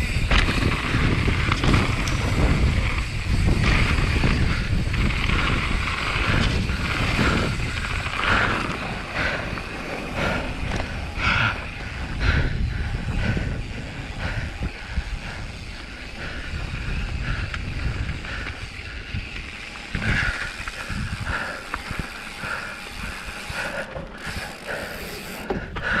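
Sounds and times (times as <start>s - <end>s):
bike rattling: 0.0s - 26.0s
bike tyres crunching gravel: 0.0s - 26.0s
wind on microphone: 0.0s - 26.0s.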